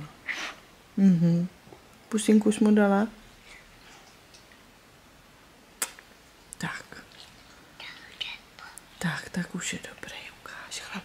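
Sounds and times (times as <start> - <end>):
soft whispering: 6.6 - 11.0.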